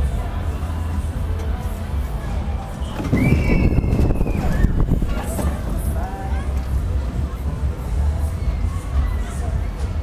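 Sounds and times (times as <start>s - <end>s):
rumble of wind and ride noise: 0.0s - 10.0s.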